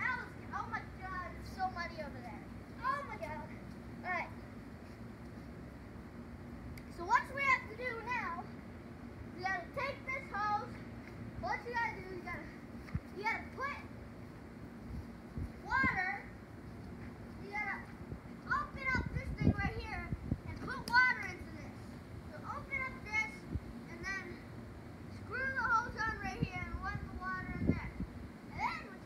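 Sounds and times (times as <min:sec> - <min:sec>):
faint steady hum: 0:00.0 - 0:29.0
child calling out and chattering: 0:02.8 - 0:04.4, 0:15.6 - 0:16.4, 0:28.5 - 0:29.0.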